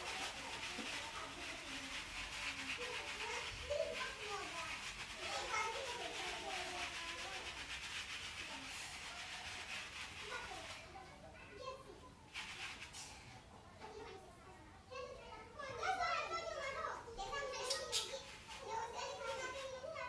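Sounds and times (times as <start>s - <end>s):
sponge rubbing over hair: 0.0s - 13.1s, 15.8s - 20.0s.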